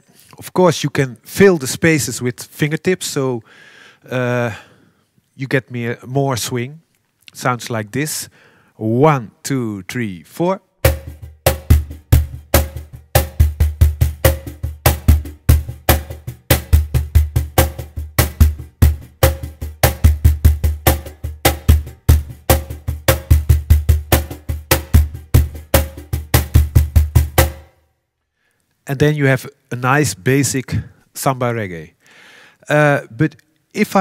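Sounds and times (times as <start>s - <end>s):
cajon played by hand: 10.9s - 27.7s.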